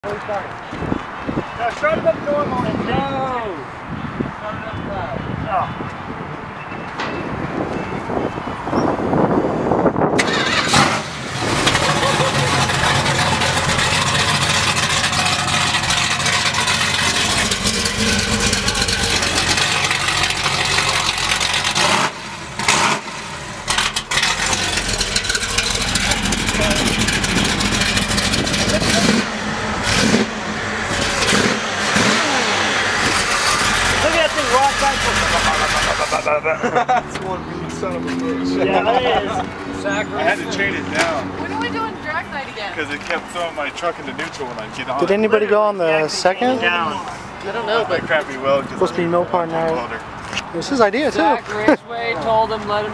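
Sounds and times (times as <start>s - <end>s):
engine starting and revving: 10.2s - 36.3s.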